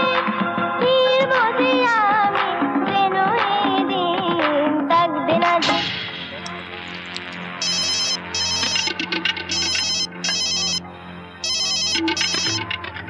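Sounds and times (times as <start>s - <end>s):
low music drone: 6.4s - 11.4s
telephone trilling ring: 7.6s - 10.8s, 11.4s - 12.7s.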